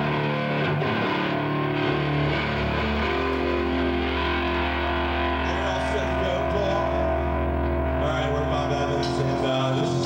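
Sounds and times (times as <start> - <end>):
distorted electric guitar chords: 0.0 - 10.0.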